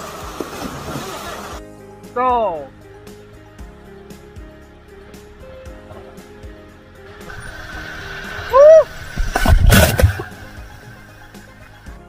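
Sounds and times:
rushing water: 0.0s - 1.6s, 7.1s - 11.8s
background music: 0.0s - 12.0s
loud splash into water: 7.3s - 11.2s
short high shout: 8.5s - 8.9s.

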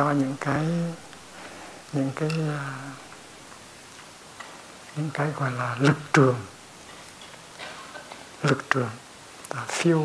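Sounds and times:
faint room tone hiss: 0.0s - 10.0s
faint irregular ticks: 1.1s - 10.0s.

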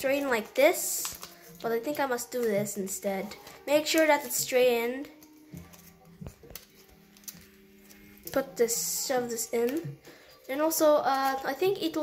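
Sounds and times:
paper rustling and tapping: 0.0s - 10.5s.

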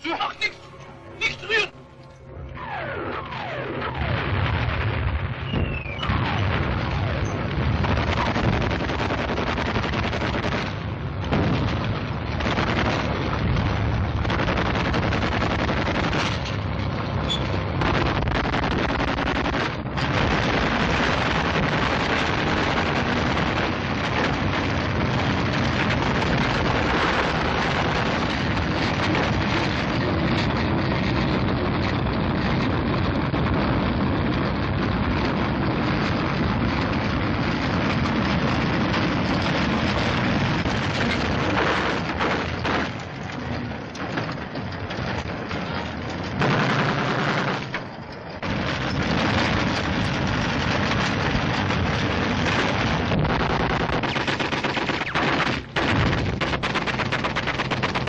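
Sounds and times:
tank rumbling and clattering: 0.0s - 58.0s
falling whistles: 5.4s - 6.1s.

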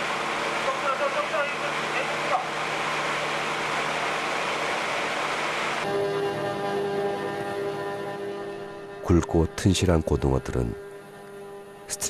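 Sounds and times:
boat engine hum: 0.0s - 12.0s
sustained string chords: 1.2s - 12.0s.

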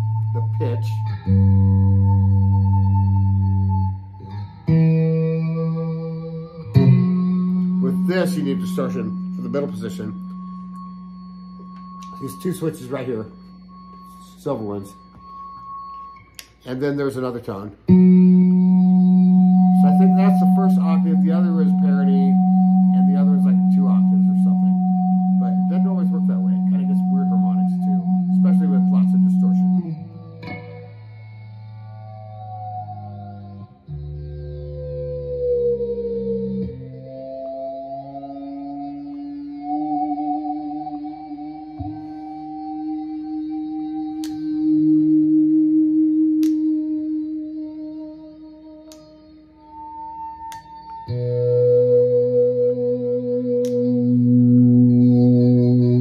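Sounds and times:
sustained electric guitar note: 0.0s - 16.2s, 17.9s - 56.0s.

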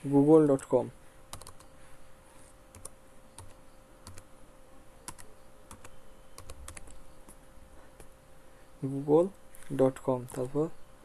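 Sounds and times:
faint steady hum: 0.0s - 11.0s
computer keyboard typing: 1.3s - 1.7s, 2.7s - 4.3s, 5.0s - 7.4s, 10.2s - 10.6s.

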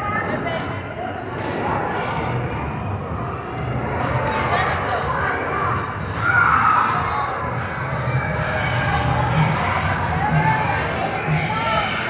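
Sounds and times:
crowd chatter in echoing hall: 0.0s - 12.0s.

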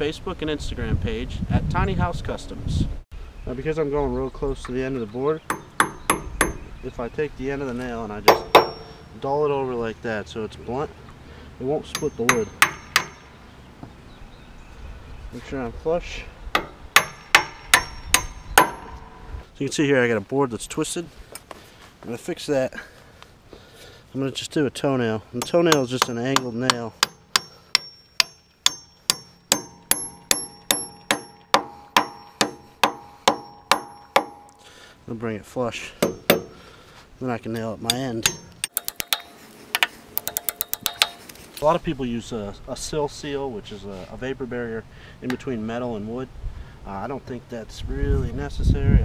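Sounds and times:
hammer striking nail into wood: 5.5s - 6.7s, 8.3s - 9.0s, 11.9s - 13.3s, 16.6s - 18.9s, 25.4s - 34.5s, 36.0s - 36.6s, 37.9s - 41.2s
short metallic ring: 8.5s - 9.1s.

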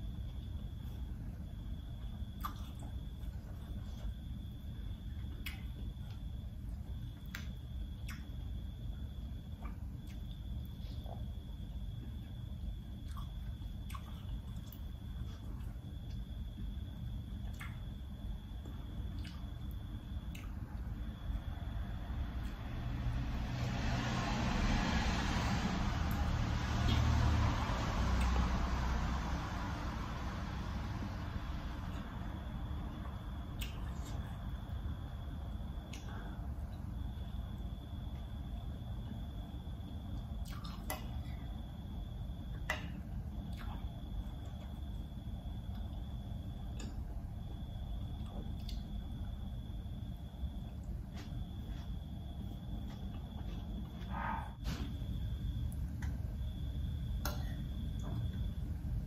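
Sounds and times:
steady low hum: 0.0s - 59.0s
soft chewing: 9.4s - 16.4s
rushing noise with low rumble: 21.4s - 33.4s.

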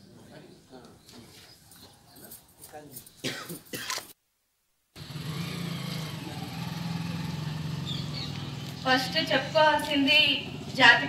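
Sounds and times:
faint outdoor voices: 0.0s - 4.2s, 6.0s - 11.0s.

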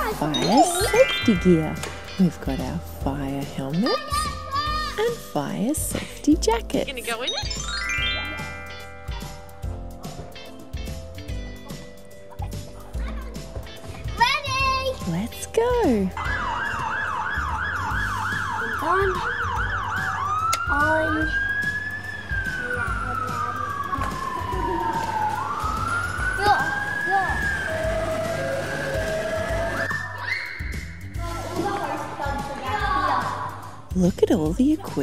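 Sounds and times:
fire engine siren: 16.2s - 30.2s.

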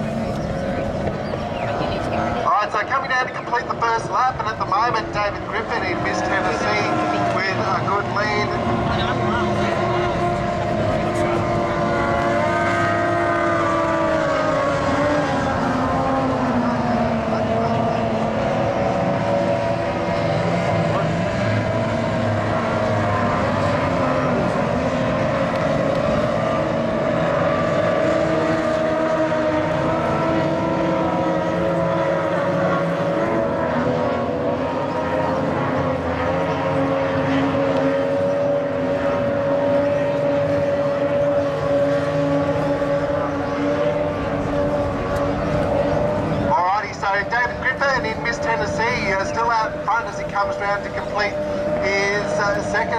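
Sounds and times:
outboard motors running flat out: 0.0s - 52.9s.

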